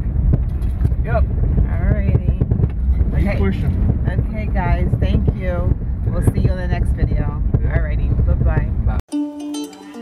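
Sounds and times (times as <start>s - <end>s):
car driving rumble inside cabin: 0.0s - 9.0s.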